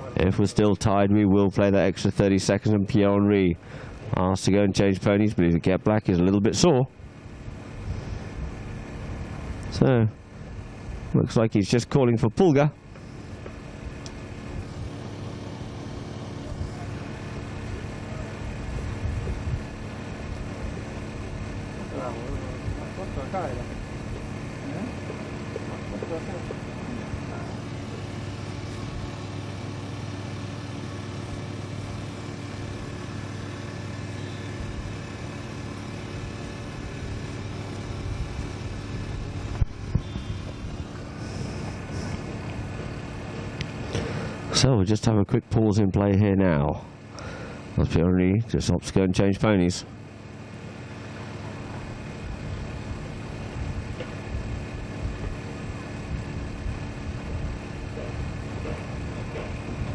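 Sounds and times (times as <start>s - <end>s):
low mechanical hum: 0.0s - 59.9s.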